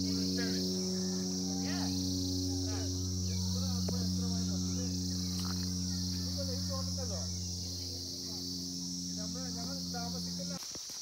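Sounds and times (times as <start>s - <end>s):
faint distant voices: 0.0s - 10.6s
low hum: 0.0s - 10.6s
insect chorus chirring: 0.0s - 11.0s.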